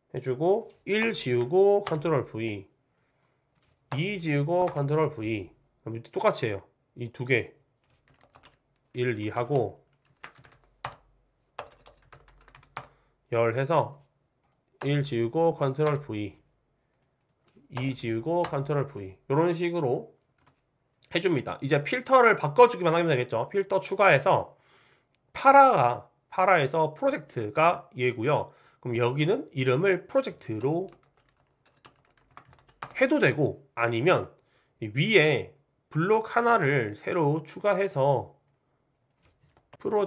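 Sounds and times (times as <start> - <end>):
computer keyboard typing: 1.0 - 2.1, 3.5 - 4.9, 7.8 - 13.0, 15.7 - 16.2, 16.9 - 18.8, 20.2 - 20.6, 30.1 - 33.0, 39.1 - 40.0.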